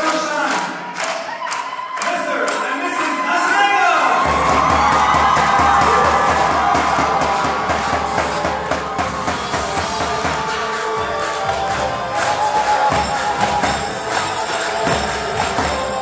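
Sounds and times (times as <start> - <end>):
crowd cheering: 0.0 - 16.0
large drums beating: 4.1 - 16.0
wind instrument melody: 5.8 - 16.0.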